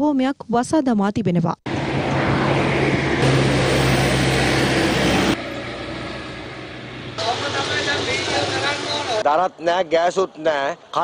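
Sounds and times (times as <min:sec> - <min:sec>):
vehicle engine running: 0:01.7 - 0:09.2
road noise: 0:01.7 - 0:11.0
voices: 0:07.2 - 0:11.0.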